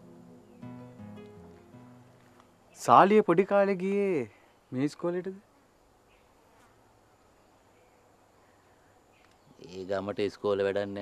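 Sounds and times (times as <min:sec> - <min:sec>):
faint insect drone: 0:00.0 - 0:11.0.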